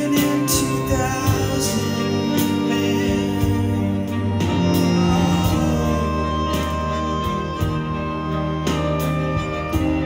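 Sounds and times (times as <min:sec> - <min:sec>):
rock band and strings playing: 0:00.0 - 0:10.0.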